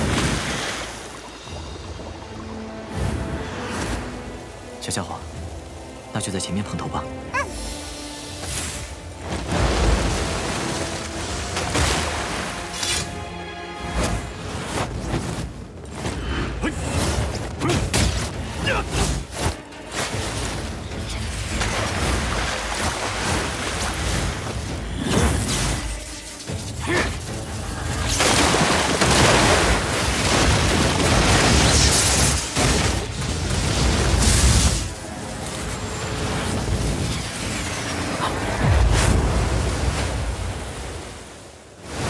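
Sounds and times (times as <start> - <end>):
background music: 0.0 - 42.0.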